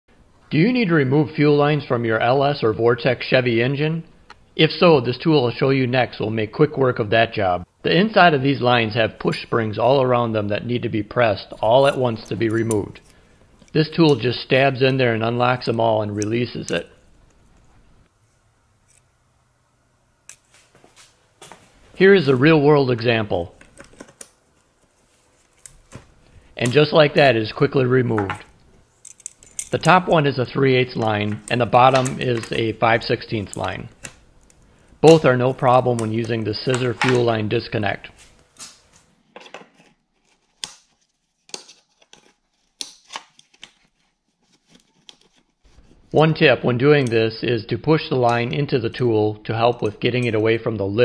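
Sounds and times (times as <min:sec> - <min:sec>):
metal tool clicks and rattles: 0:29.0 - 0:30.1.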